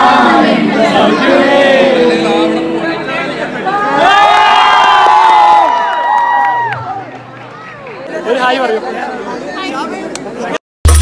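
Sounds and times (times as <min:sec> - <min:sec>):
crowd cheering and shouting: 0:00.0 - 0:08.8.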